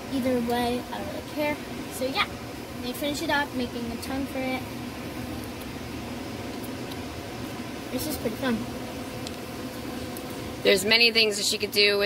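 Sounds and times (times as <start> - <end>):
room noise hum and hiss: 0.0 - 12.0.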